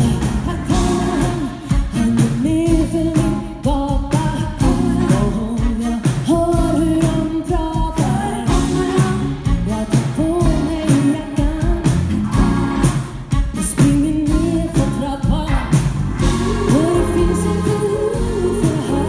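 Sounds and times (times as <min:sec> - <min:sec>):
funk soul band playing: 0:00.0 - 0:19.0
woman singing lead: 0:00.0 - 0:19.0.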